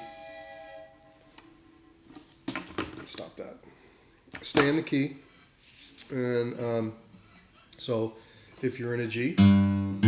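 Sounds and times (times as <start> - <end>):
acoustic guitar note: 9.4 - 10.0.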